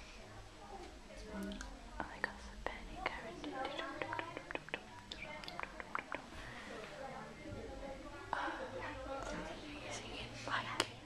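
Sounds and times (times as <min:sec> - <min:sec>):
people whispering: 0:00.0 - 0:11.0.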